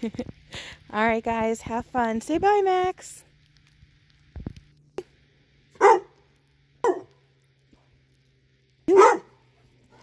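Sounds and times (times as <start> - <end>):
dog barking: 5.8 - 6.2, 6.8 - 7.1, 8.9 - 9.4.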